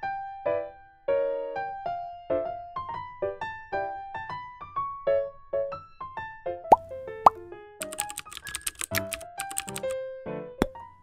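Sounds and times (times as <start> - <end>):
keyboard typing clicks: 7.8 - 10.0.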